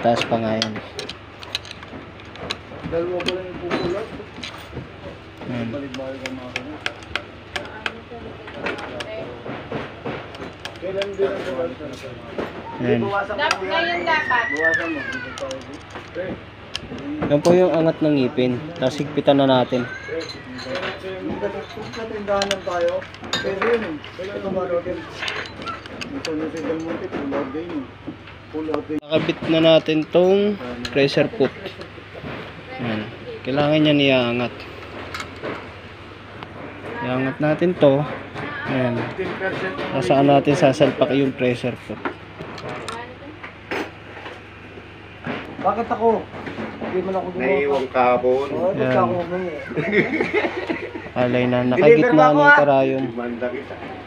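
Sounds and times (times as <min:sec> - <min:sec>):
metal parts clinking: 0:00.7 - 0:02.6.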